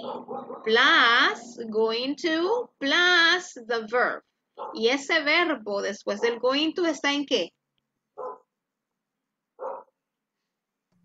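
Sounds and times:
dog barking faintly: 0.0 - 0.7, 4.6 - 4.9, 8.2 - 8.5, 9.6 - 10.0.

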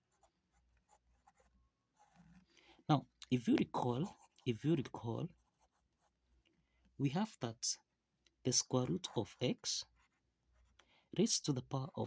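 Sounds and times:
ballpoint pen scratching paper: 0.0 - 2.5, 9.9 - 10.8.

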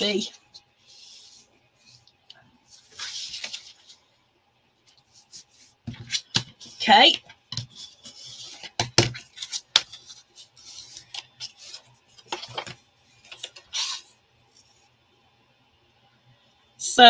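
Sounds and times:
paper rustle: 2.6 - 4.1, 4.9 - 14.8.

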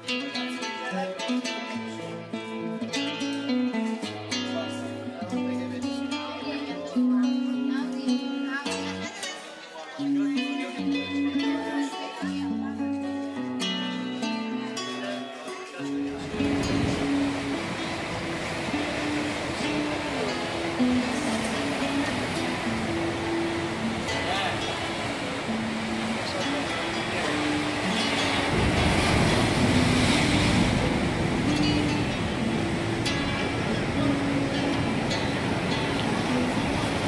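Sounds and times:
slow melodic background music: 0.0 - 37.0
sea surf breaking over rocks: 16.0 - 37.0.

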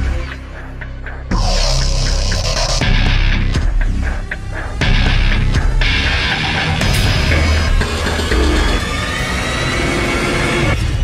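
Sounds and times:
dramatic music: 0.0 - 11.0.

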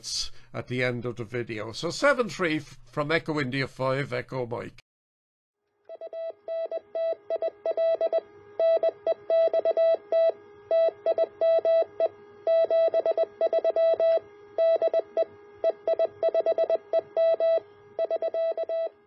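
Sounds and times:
morse code tone: 5.9 - 19.0.

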